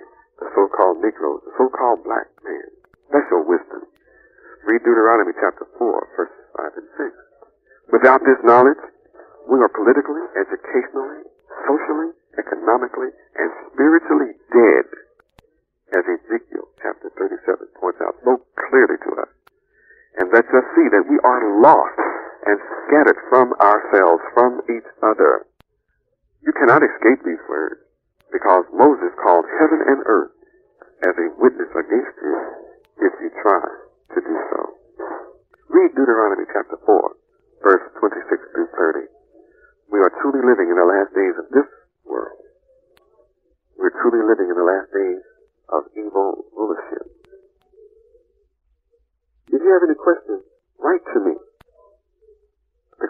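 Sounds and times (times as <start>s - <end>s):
person speaking over tinny radio: 0.4s - 3.9s, 4.6s - 7.2s, 7.9s - 15.0s, 16.0s - 19.3s, 20.2s - 25.4s, 26.5s - 39.1s, 39.9s - 42.4s, 43.8s - 47.2s, 49.5s - 51.4s
person lecturing: 0.4s - 7.2s, 7.9s - 15.0s, 16.0s - 19.2s, 20.2s - 25.4s, 26.5s - 27.8s, 28.4s - 39.1s, 39.9s - 42.4s.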